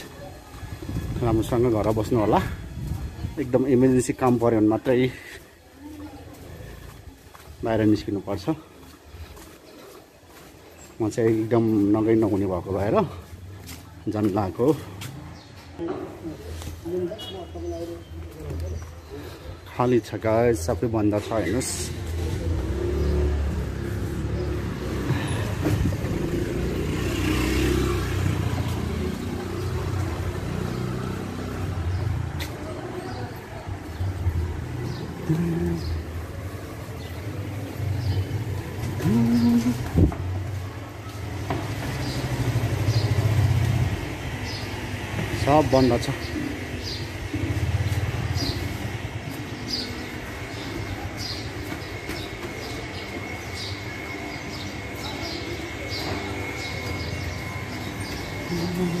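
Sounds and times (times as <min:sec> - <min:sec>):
motor scooter engine running: 0:50.4 - 0:59.0.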